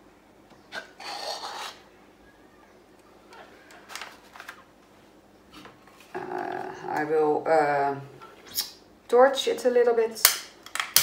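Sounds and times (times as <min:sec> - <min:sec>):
plastic cup scuffing and scraping: 0:00.7 - 0:01.8.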